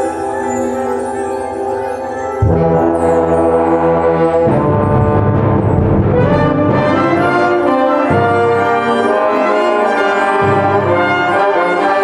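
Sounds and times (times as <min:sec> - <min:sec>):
concert band brass chord: 0:02.4 - 0:12.0.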